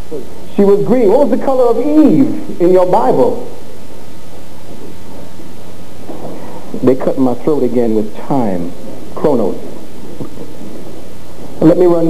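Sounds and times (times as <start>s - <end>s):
analogue recording hiss: 0.0s - 12.0s
man lecturing: 0.2s - 3.6s, 6.8s - 9.8s, 11.6s - 12.0s.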